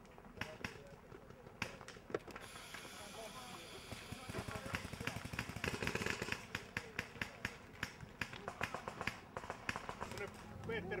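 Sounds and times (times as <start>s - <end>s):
voices in background: 0.2s - 11.0s
paintball markers firing: 0.4s - 10.5s.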